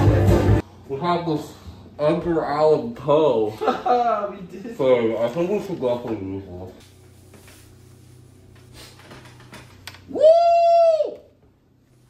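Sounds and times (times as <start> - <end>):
person whooping: 10.1 - 11.4.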